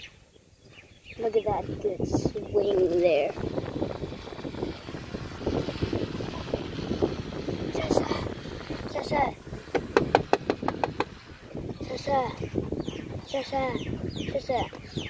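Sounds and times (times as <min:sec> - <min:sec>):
indistinct talking: 0:01.2 - 0:14.8.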